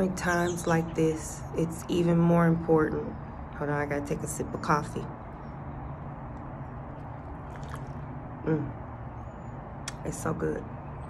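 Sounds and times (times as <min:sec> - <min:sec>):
low background rumble: 0:00.0 - 0:11.0.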